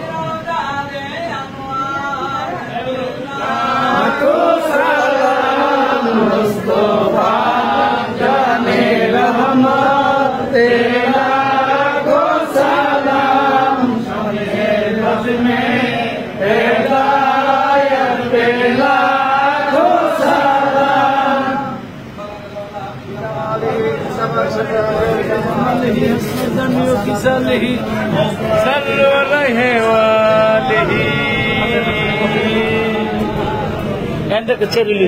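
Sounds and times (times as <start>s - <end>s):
men chanting in unison: 0.0s - 21.9s, 23.2s - 34.2s.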